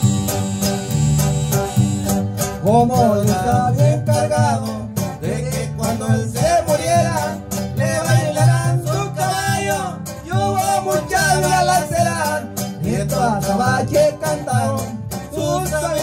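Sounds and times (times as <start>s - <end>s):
string band playing: 0.0s - 16.0s
upright bass notes: 0.0s - 16.0s.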